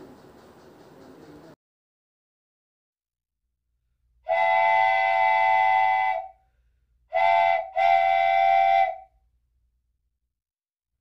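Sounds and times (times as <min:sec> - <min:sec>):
train whistle blasts: 0:04.3 - 0:06.5, 0:07.1 - 0:09.2.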